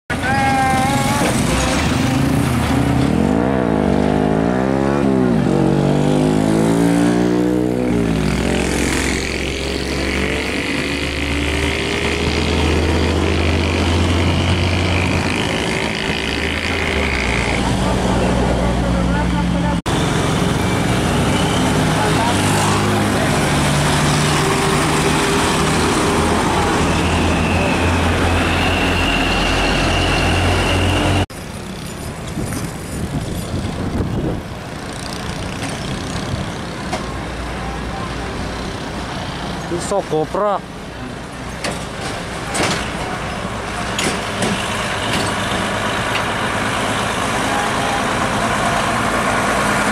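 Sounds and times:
heavy diesel trucks driving by: 0.1 - 49.9.

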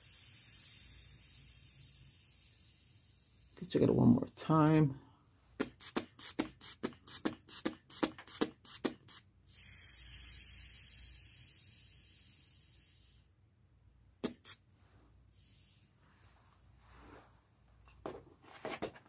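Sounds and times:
air hissing from release valve: 0.0 - 3.6, 5.6 - 13.4, 14.2 - 14.6, 15.3 - 16.0.

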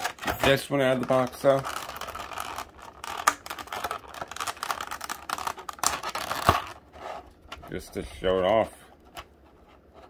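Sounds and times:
plastic clicks and crinkles: 0.0 - 6.8.

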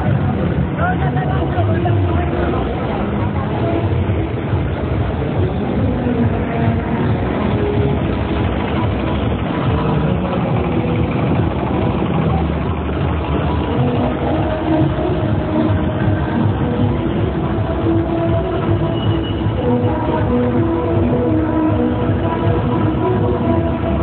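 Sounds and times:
crowd babble: 0.0 - 24.0
vehicle engine running low: 0.0 - 24.0.

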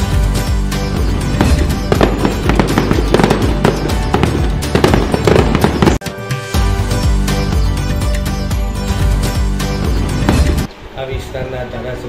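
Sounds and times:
festive background music: 0.0 - 10.7
fireworks crackling and banging: 1.2 - 6.0.

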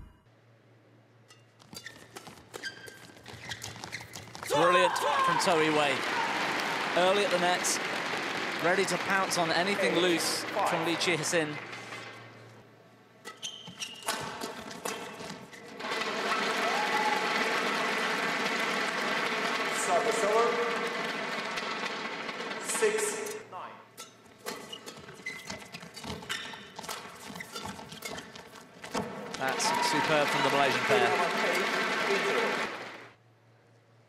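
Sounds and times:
shoe squeaks on court: 1.3 - 4.5, 13.2 - 15.8, 23.9 - 29.2
crowd shouting: 4.5 - 7.0, 16.0 - 17.8, 29.4 - 33.0.

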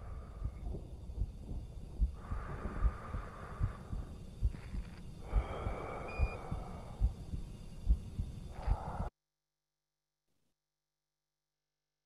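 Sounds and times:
long breaths: 0.0 - 9.1
slow heartbeat thumps: 0.0 - 9.1.

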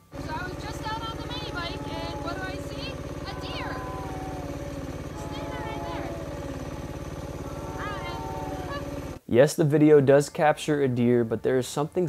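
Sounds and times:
dirt bike engine idling: 0.0 - 9.2.

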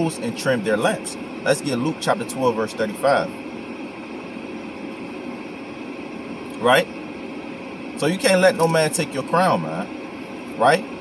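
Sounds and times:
car ventilation hiss and hum: 0.0 - 11.0.

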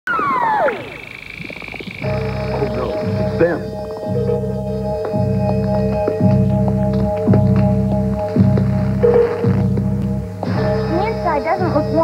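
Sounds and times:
falling synth sweeps: 0.1 - 6.6
steady held synth tones: 0.1 - 12.0
low throbbing pulse: 0.8 - 12.0.

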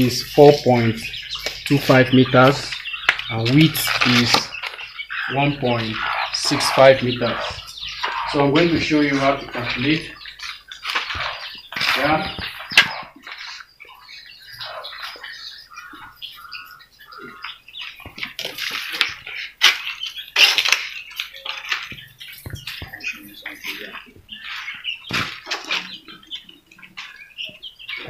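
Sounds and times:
bird-like chirps and calls: 0.0 - 28.0.

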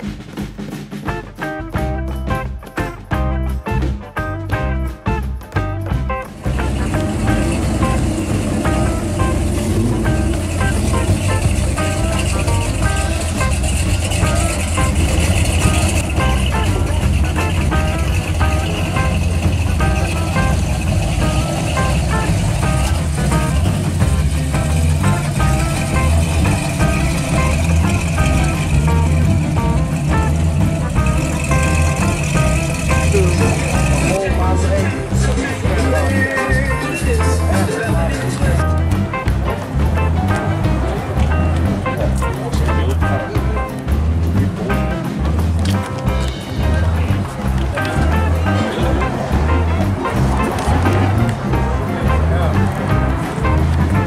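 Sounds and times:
music playing: 0.0 - 54.0
car engines rumbling past: 4.4 - 54.0.

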